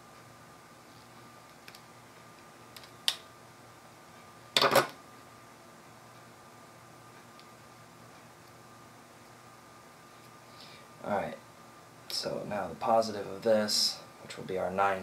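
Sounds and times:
wire strippers clattering on table: 4.6s - 5.0s.

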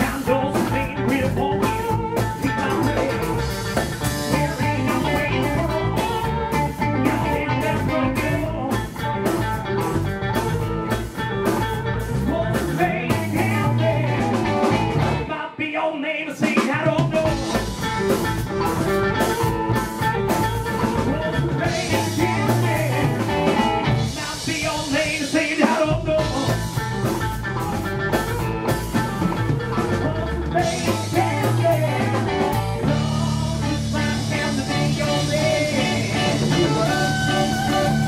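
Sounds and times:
drum kit: 0.0s - 15.3s, 16.4s - 38.0s
bass guitar: 0.0s - 15.4s, 16.8s - 38.0s
electric guitars: 0.0s - 15.5s, 17.0s - 38.0s
harmonica: 1.6s - 12.2s, 26.2s - 38.0s.

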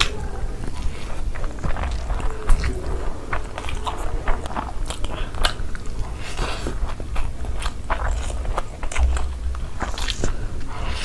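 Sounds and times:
chewing and biting food: 0.0s - 11.0s.

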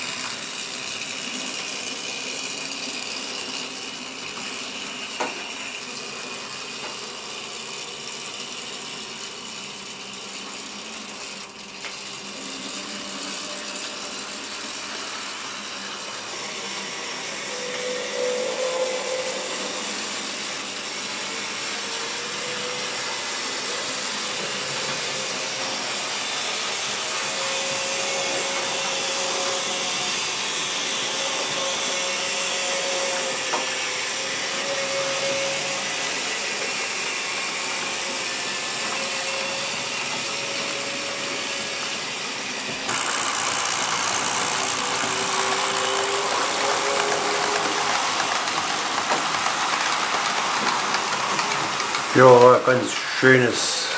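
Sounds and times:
faint motor whine: 0.0s - 53.9s
model train wheels on track: 0.0s - 53.9s.

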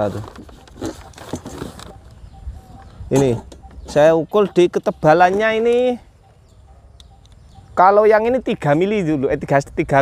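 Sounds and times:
handling noises: 0.0s - 7.7s
soft clicks: 6.9s - 7.5s.

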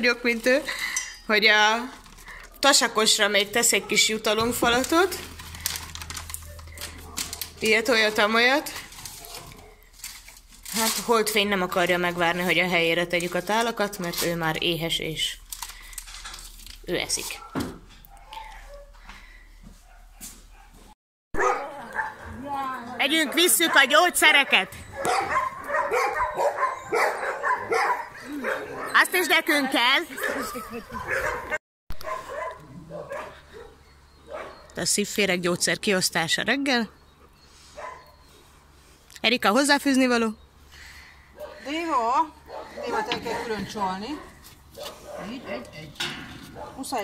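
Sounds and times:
low steady hum: 0.1s - 17.2s
dogs barking: 3.4s - 5.2s, 6.2s - 9.9s, 17.3s - 19.0s, 21.4s - 29.4s, 30.1s - 34.8s, 37.7s - 38.3s, 41.3s - 47.0s
cat food pouch crinkling: 4.7s - 7.6s.

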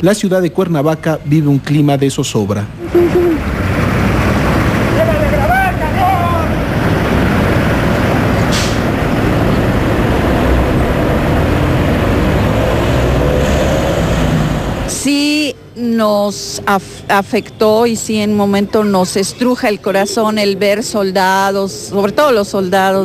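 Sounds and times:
heavy vehicle engines rumbling: 0.0s - 23.0s
short hiss: 8.5s - 8.9s.

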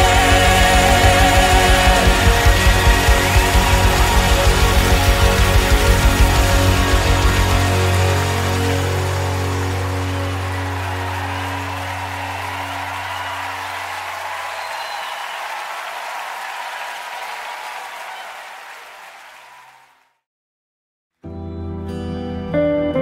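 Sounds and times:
worship band chord: 0.0s - 14.2s
congregation applause and cheering: 0.0s - 20.2s.

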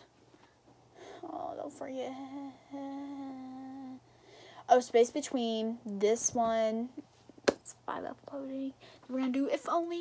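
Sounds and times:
girl humming: 1.2s - 4.0s.

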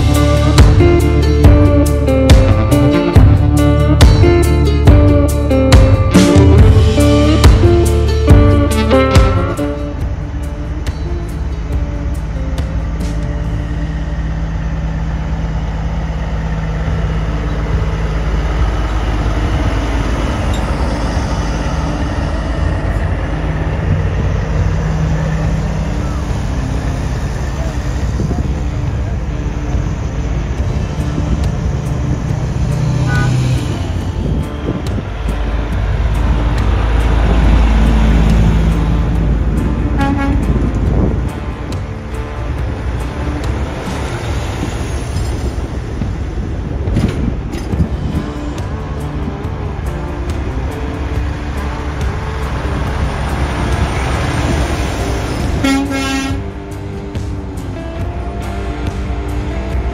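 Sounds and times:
truck engines rumbling: 0.0s - 59.9s
air horns: 7.2s - 10.3s, 39.9s - 40.7s, 55.6s - 56.6s.

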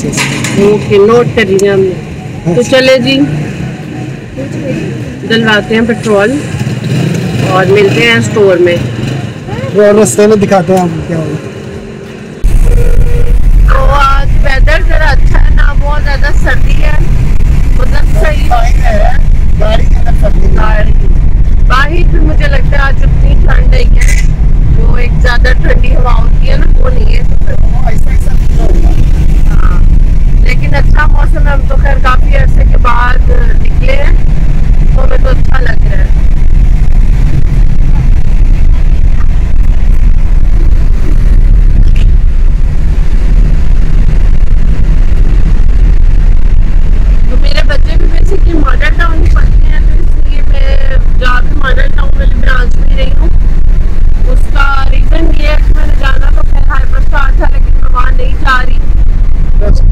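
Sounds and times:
voices talking: 0.0s - 11.5s, 17.7s - 34.2s, 34.8s - 36.2s, 47.2s - 53.3s
car road and engine rumble: 0.0s - 59.9s.

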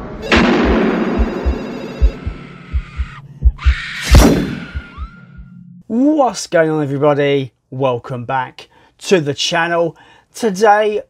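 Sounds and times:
whoosh building to loud hit: 0.0s - 1.6s, 3.4s - 5.5s
deep bass thumps: 0.2s - 5.7s.

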